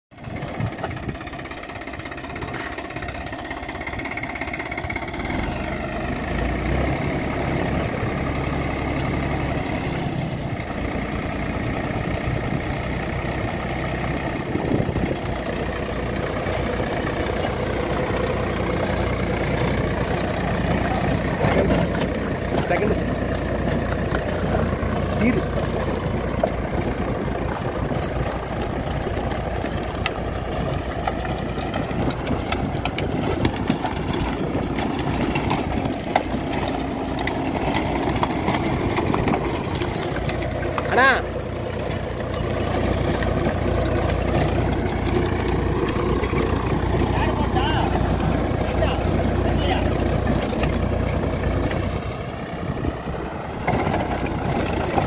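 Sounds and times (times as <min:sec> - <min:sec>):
tractor diesel engine running: 0:00.1 - 0:55.0
rotavator churning soil: 0:00.2 - 0:55.0.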